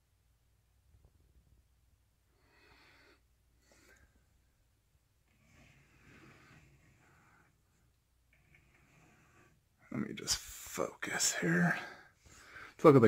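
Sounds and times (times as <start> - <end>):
soft breaths close to microphone: 2.2 - 13.0.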